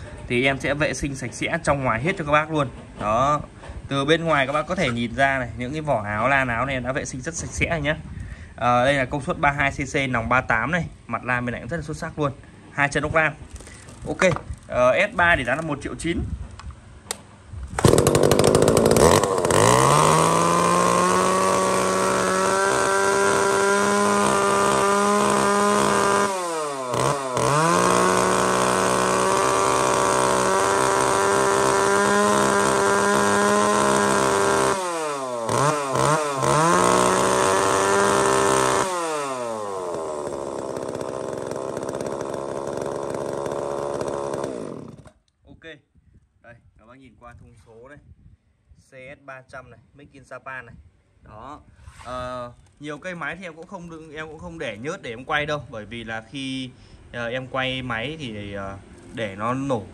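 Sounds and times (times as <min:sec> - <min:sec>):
chainsaw revving: 0:17.8 - 0:45.2.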